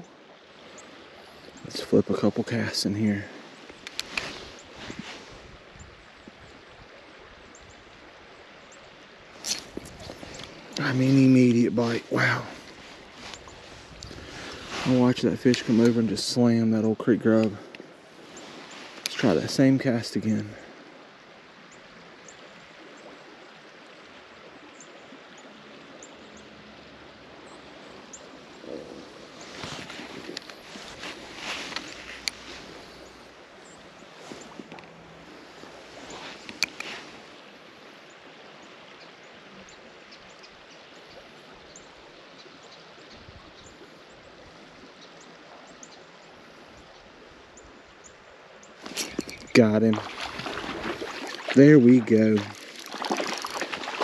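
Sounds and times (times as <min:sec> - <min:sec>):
creek water running: 0:00.0 - 0:54.0
rustling noises: 0:03.6 - 0:05.4, 0:09.4 - 0:16.3, 0:28.7 - 0:33.2, 0:34.0 - 0:37.4, 0:48.8 - 0:54.0.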